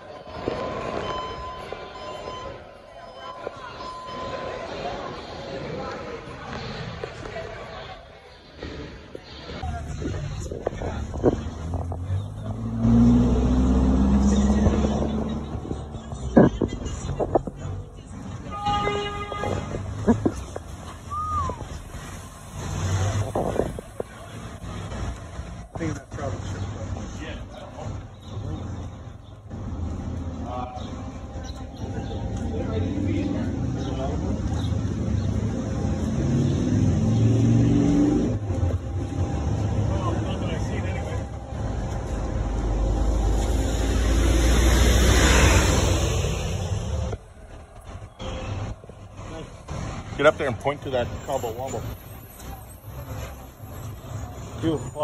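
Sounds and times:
street traffic: 0.0s - 55.0s
motor vehicle passing: 8.6s - 18.4s, 19.7s - 54.7s.

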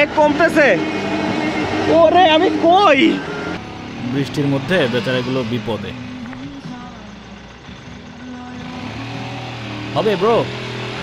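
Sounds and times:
motorcycle engine at low revs: 0.0s - 11.0s.

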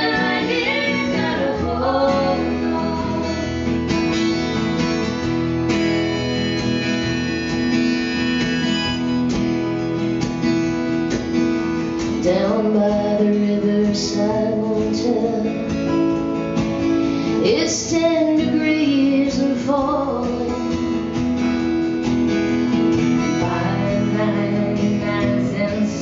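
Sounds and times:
woman singing: 0.0s - 3.7s, 12.2s - 16.0s, 17.3s - 21.0s, 23.2s - 26.0s
acoustic guitars strumming: 0.0s - 26.0s.

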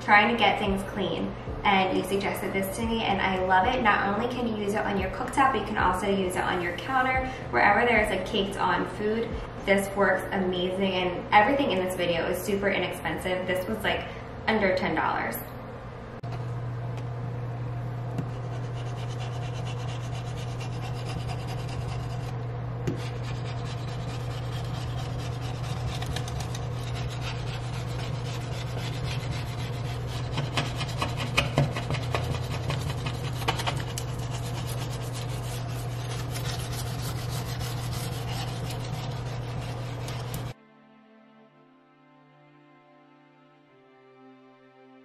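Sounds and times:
steady low hum: 0.0s - 40.6s
blade scraper rasping on glass: 23.0s - 40.6s.

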